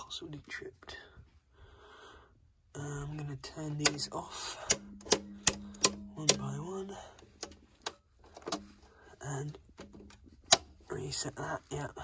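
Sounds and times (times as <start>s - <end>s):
circuit breaker switch clicks: 3.7s - 6.6s, 7.2s - 8.8s, 9.8s - 10.7s.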